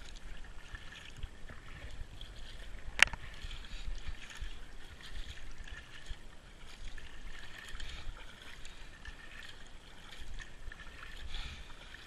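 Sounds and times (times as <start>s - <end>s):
paddle swishing through water: 0.0s - 12.0s.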